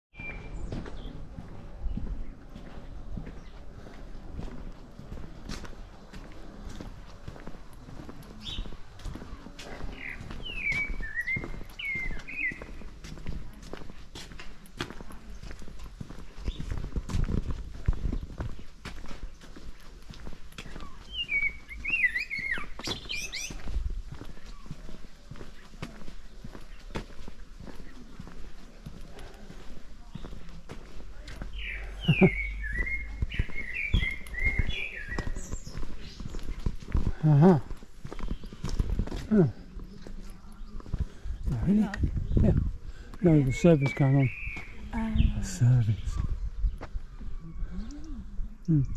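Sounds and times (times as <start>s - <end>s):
footsteps on paving stones: 0.2s - 48.8s
songbird warbling: 20.8s - 23.6s, 31.5s - 36.2s.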